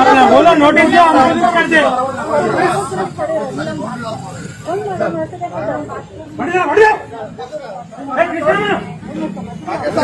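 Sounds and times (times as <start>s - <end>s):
men arguing: 0.0s - 10.0s.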